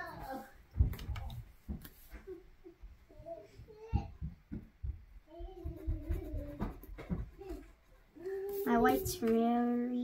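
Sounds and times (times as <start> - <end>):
drawing on paper: 5.4 - 9.8.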